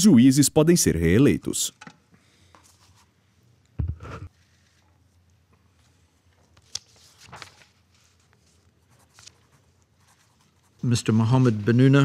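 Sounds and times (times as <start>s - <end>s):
man speaking: 0.0s - 1.8s, 10.8s - 12.0s
paper rustling: 5.8s - 12.0s.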